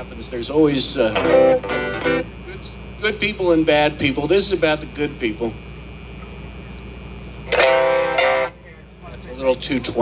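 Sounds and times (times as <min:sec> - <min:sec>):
low amplifier hum: 0:00.0 - 0:10.0
electric guitar chord strummed: 0:01.1 - 0:02.4, 0:07.5 - 0:08.6.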